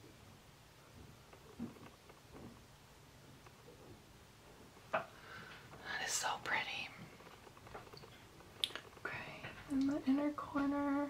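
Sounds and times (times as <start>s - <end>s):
woman whispering: 5.8s - 7.0s, 9.0s - 9.7s.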